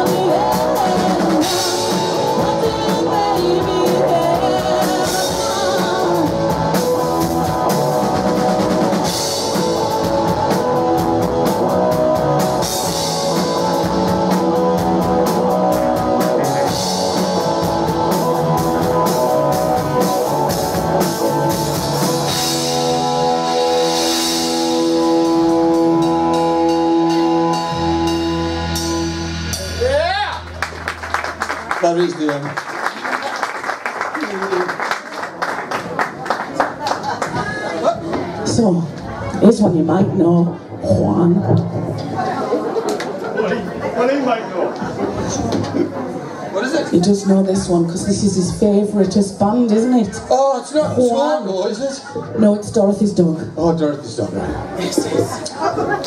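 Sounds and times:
woman singing: 0.0s - 6.8s
drum kit with cymbals: 0.0s - 30.5s
electric guitar: 0.0s - 31.8s
bass guitar: 0.0s - 32.2s, 37.9s - 42.7s
people clapping: 30.3s - 38.0s.

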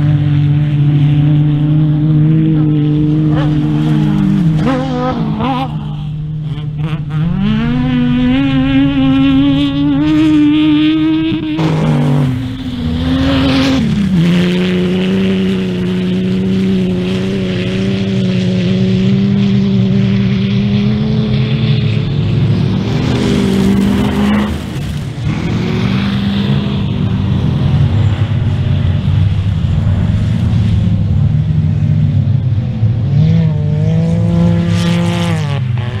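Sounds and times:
race car engine revving: 0.0s - 36.0s.

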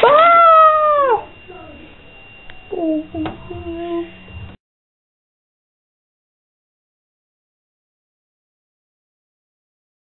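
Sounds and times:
high-pitched cry: 0.0s - 1.3s.

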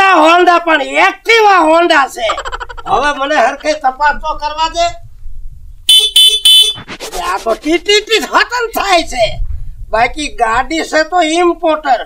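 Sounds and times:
scooter horn beeps: 5.9s - 6.8s.

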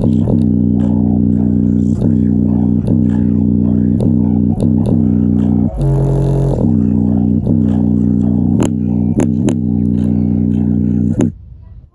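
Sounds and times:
deep bass line from speaker: 0.0s - 11.9s.

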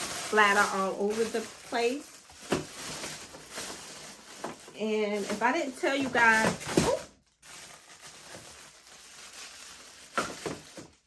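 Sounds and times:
plastic packaging rustling: 0.0s - 11.0s.

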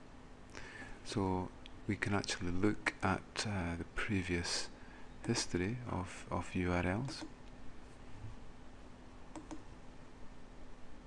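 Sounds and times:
faint steady hum: 0.0s - 11.0s
computer mouse clicks: 9.3s - 9.7s.

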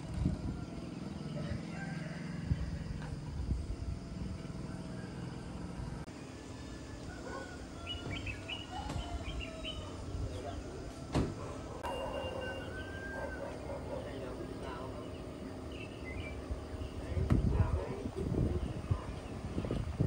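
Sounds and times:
birds chirping and whistling: 6.4s - 20.0s.

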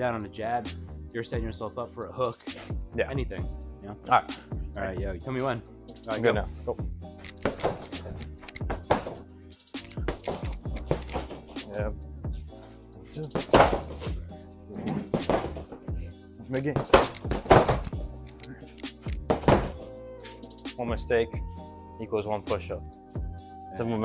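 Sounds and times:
background music: 0.0s - 24.0s.

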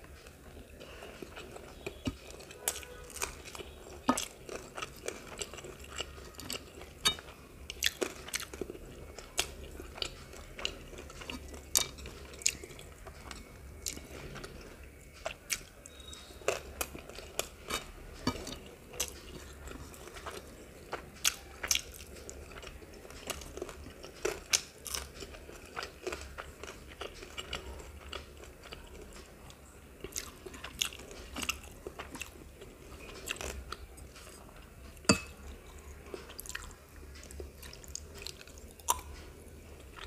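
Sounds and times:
chewing with wet smacks: 0.0s - 40.0s
crunching of fried food: 0.0s - 40.0s.

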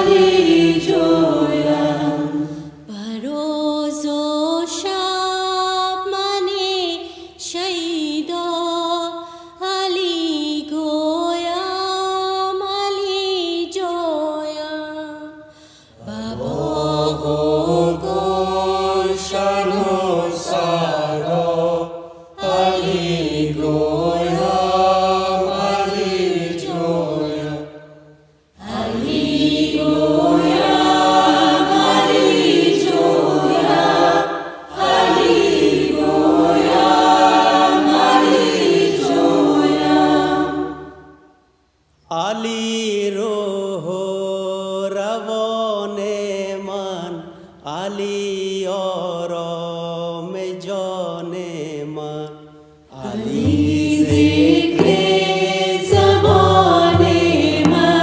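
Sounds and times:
choir chanting: 0.0s - 2.9s, 16.0s - 27.9s, 28.6s - 41.2s, 52.9s - 58.0s.

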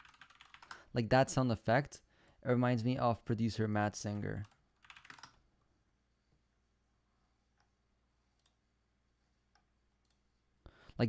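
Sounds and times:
computer keyboard typing: 0.0s - 0.8s, 4.4s - 5.4s.

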